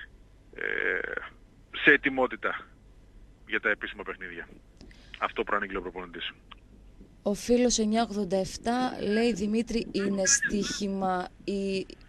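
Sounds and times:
man talking on radio: 3.5 - 4.5, 10.0 - 10.8.

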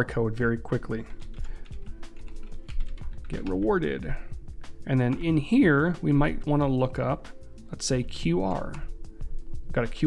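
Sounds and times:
computer keyboard typing: 1.0 - 3.9.

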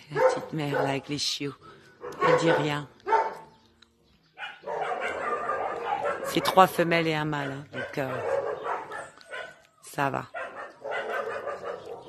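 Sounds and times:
dogs barking: 0.0 - 1.2, 2.0 - 3.6, 4.3 - 9.7, 10.3 - 12.0.

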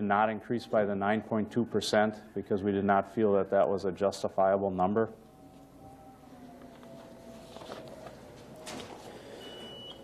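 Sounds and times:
faint high-pitched beep: 9.4 - 10.0.

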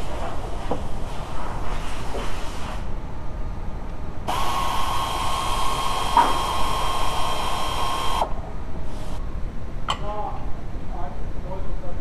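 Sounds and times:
power tool motor whine: 4.3 - 8.4.

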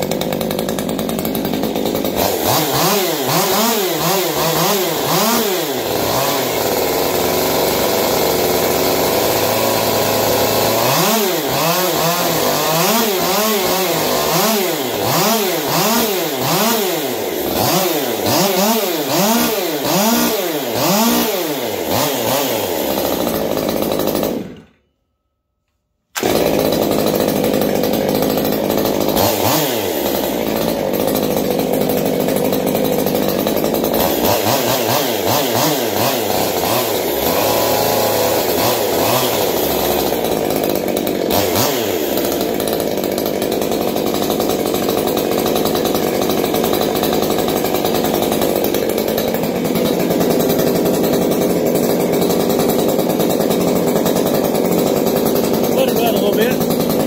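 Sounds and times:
chainsaw engine revving: 0.0 - 24.8, 26.2 - 57.0.

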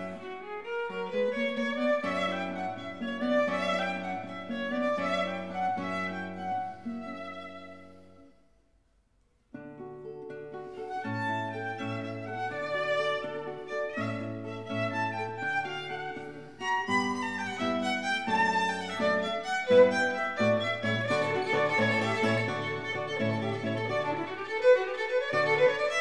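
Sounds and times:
violin and guitar duo: 0.0 - 8.4, 9.7 - 26.0.

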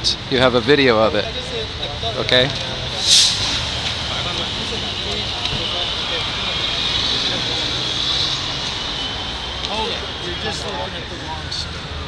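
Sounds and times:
street traffic noise: 0.0 - 12.0
vehicle passing: 2.6 - 12.0
short burst of noise: 3.0 - 4.5.

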